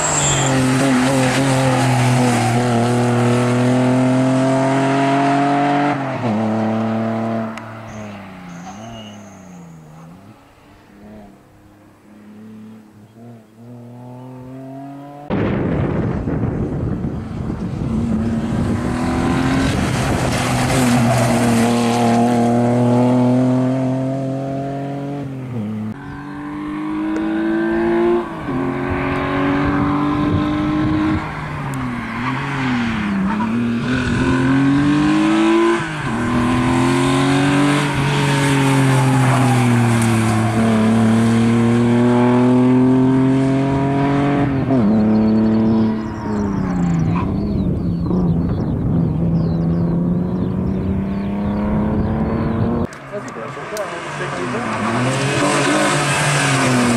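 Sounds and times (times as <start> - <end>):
car engine revving hard: 0.0 - 7.6, 17.8 - 31.3, 32.2 - 48.4, 49.2 - 52.9, 53.7 - 56.9.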